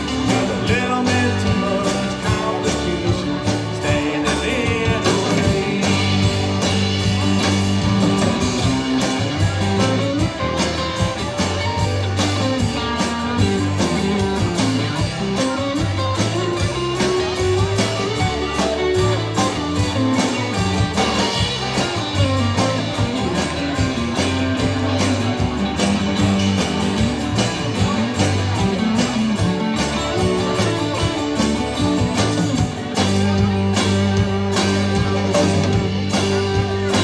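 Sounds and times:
acoustic guitar: 0.0s - 37.0s
drums: 0.0s - 37.0s
electric bass: 0.0s - 37.0s
electric guitars: 0.0s - 37.0s.

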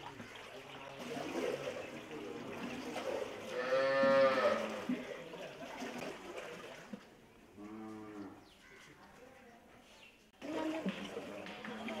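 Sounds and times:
liquid splashing in a tank: 0.0s - 7.2s, 10.4s - 12.0s
cow mooing: 3.5s - 4.7s.

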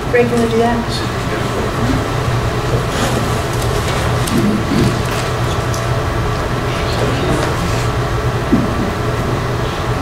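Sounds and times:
room hum and hiss: 0.0s - 10.0s
faint voices: 0.1s - 10.0s.

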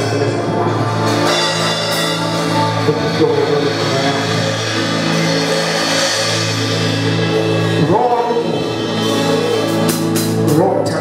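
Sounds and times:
live band holding chords: 0.0s - 11.0s.

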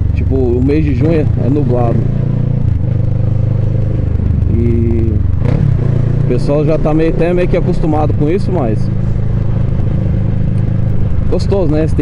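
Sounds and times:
motorcycle engine droning: 0.0s - 12.0s.

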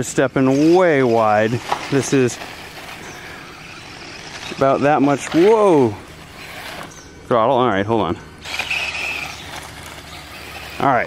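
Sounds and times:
rc motorcycle motor whine: 0.0s - 11.0s
tyres scrabbling on gravel: 0.0s - 11.0s.

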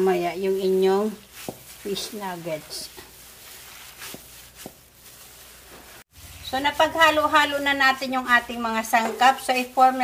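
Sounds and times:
hands kneading moist mixture: 0.0s - 10.0s.

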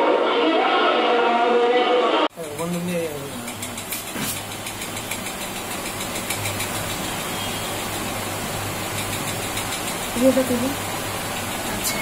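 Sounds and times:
machine humming: 2.3s - 12.0s.

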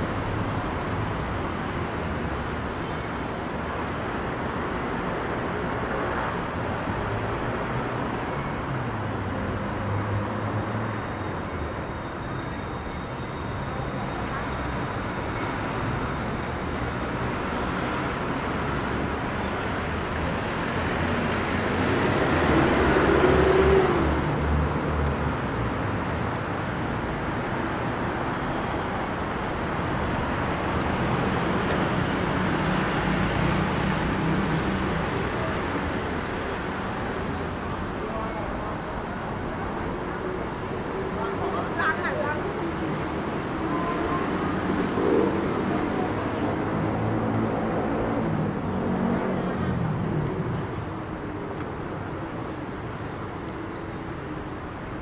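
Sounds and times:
road traffic rumbling: 0.0s - 55.0s.

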